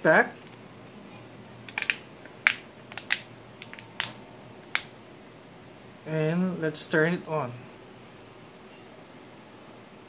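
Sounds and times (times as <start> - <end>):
plastic clips snapping into place: 1.7 - 4.2.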